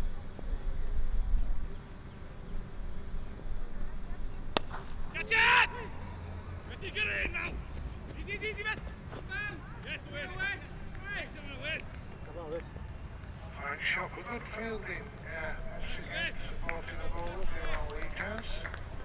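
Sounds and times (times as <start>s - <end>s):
cricket bat hitting ball: 4.5s - 5.1s
players calling out: 4.6s - 18.9s
loud shout: 5.1s - 6.1s.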